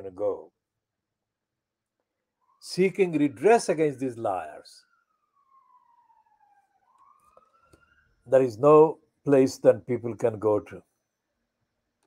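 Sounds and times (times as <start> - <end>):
faint siren wailing: 2.1 - 9.6.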